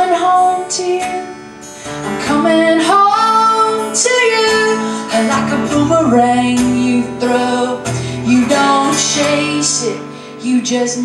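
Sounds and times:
strummed acoustic guitar: 0.0s - 11.0s
woman singing: 0.0s - 11.0s.

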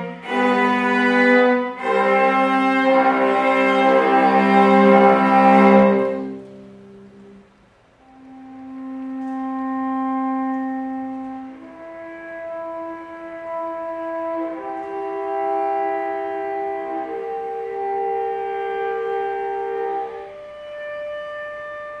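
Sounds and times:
solo cello: 0.0s - 22.0s.

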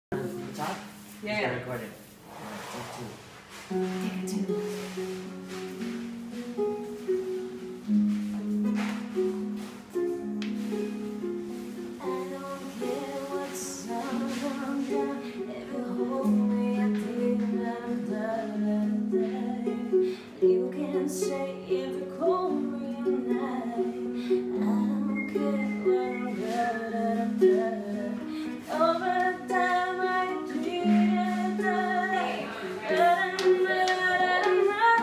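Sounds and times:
plucked string instrument: 3.6s - 35.0s
person singing: 12.0s - 35.0s.

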